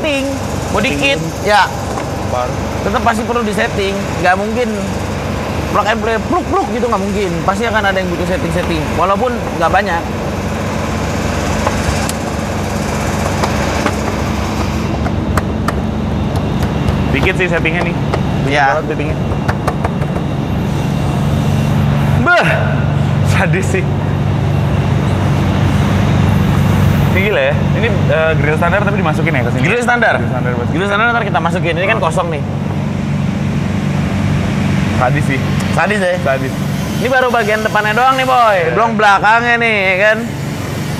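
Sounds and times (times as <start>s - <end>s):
motor humming: 0.0s - 40.9s.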